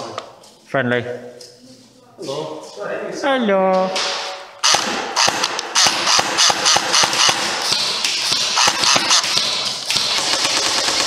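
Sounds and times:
airsoft rifle firing rapid shots: 0:04.1 - 0:11.0.

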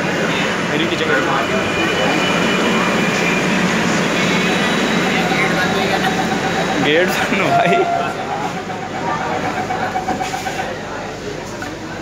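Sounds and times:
metro train coach noise: 0:00.0 - 0:12.0
passengers' voices: 0:00.0 - 0:12.0
steady tone: 0:00.8 - 0:11.0.

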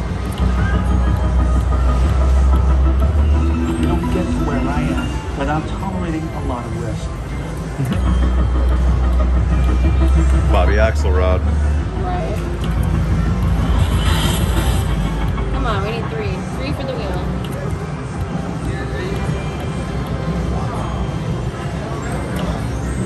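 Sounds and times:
slot machine music and effects: 0:00.0 - 0:16.1.

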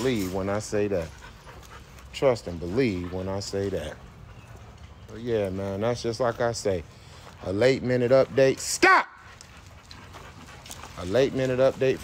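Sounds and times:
dogs panting faintly: 0:00.0 - 0:12.0.

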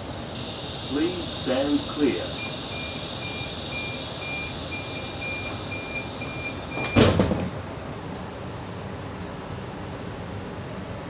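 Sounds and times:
train carriage noise: 0:00.0 - 0:11.0
high door warning beeps: 0:00.4 - 0:07.2
sliding doors shutting with thud: 0:05.2 - 0:07.6.

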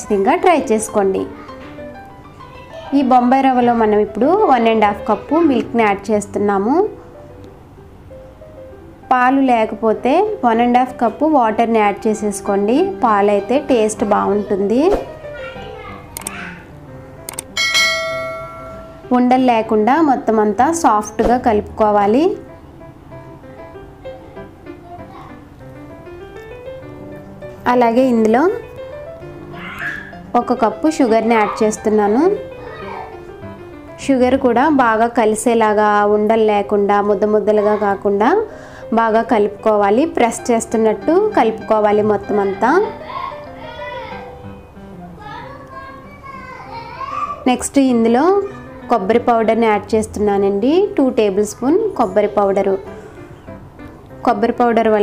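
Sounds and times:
faint music: 0:00.0 - 0:55.0
child's high-pitched voice: 0:02.4 - 0:03.2, 0:14.2 - 0:16.6, 0:24.2 - 0:25.4, 0:29.6 - 0:30.1, 0:31.1 - 0:31.8, 0:32.6 - 0:33.2, 0:37.4 - 0:38.3, 0:42.4 - 0:44.2, 0:45.2 - 0:47.5
quick clicks: 0:16.2 - 0:16.4, 0:17.3 - 0:17.6
bell chime: 0:17.6 - 0:19.1.

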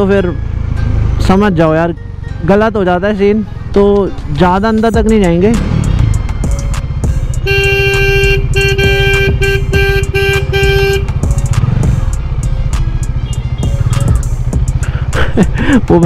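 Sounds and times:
motorcycle engine throbbing: 0:00.0 - 0:16.0
vehicle horn honking: 0:07.4 - 0:11.3.

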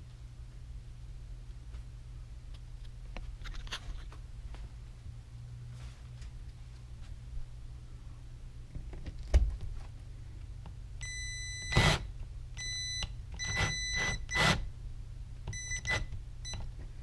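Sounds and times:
drill motor whine: 0:11.7 - 0:12.0, 0:13.5 - 0:14.6.

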